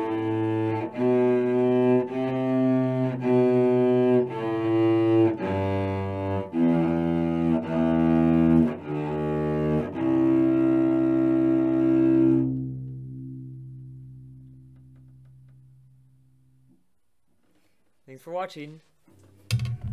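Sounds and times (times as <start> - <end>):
cello bowing scale notes: 0.0 - 16.7.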